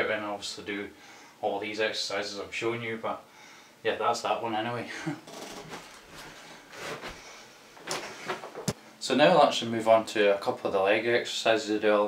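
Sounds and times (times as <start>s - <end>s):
rustling and knocking of person moving: 5.2s - 8.8s.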